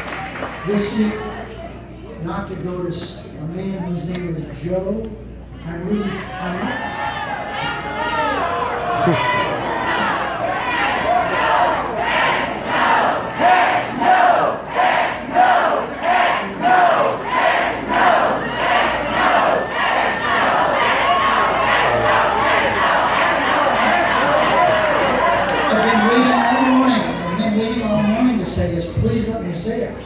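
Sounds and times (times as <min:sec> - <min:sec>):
crowd noise and scattered voices: 0:00.0 - 0:30.0
crowd chanting in unison: 0:09.0 - 0:25.6.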